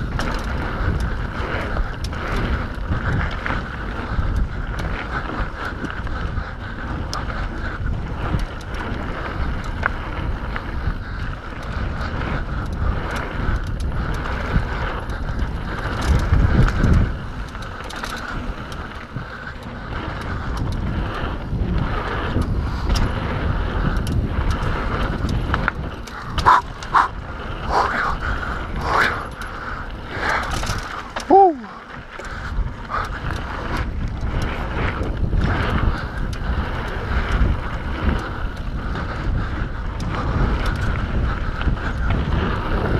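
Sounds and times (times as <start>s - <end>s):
bike clicks and rattles: 0.0s - 42.9s
bike tyres running on dirt: 0.0s - 42.9s
wind rushing over microphone: 0.0s - 42.9s.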